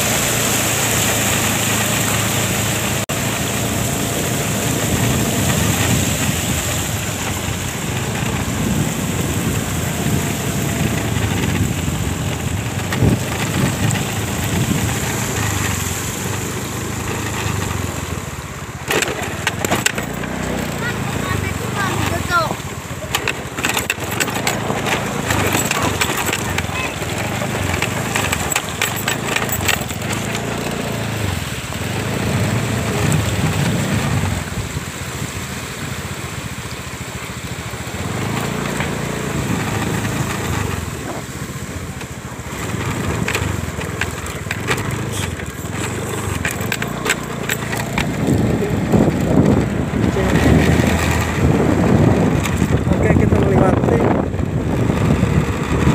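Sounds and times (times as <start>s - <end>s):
scooter engine running unevenly: 0.0s - 55.9s
water splashing: 0.0s - 55.9s
clicking sounds: 42.0s - 51.5s.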